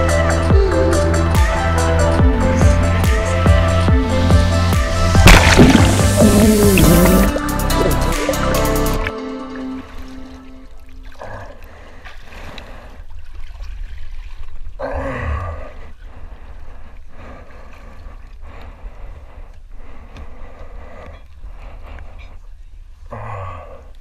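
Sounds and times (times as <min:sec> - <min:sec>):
water splashing and streaming: 0:05.0 - 0:15.0
low grunt of effort: 0:05.3 - 0:08.2, 0:14.8 - 0:15.8.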